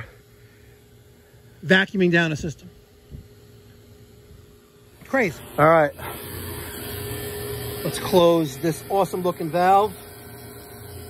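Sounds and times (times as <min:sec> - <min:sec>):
vacuum pump humming: 0:00.0 - 0:11.0.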